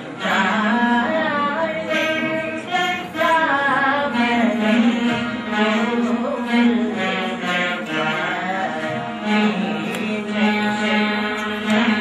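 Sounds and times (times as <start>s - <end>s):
plucked veena strings: 0.0s - 12.0s
boy singing: 0.2s - 12.0s.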